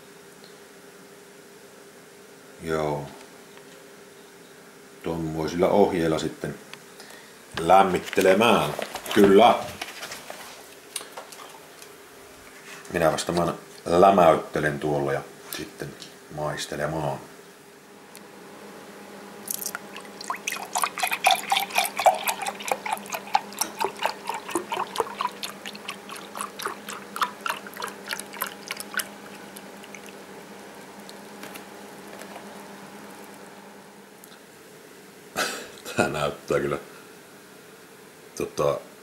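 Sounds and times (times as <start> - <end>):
juice pouring into a glass: 19.5 - 30.3.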